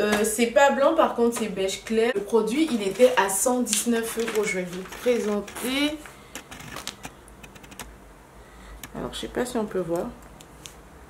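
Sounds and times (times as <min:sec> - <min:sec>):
plastic packaging crackling: 0:02.5 - 0:07.9.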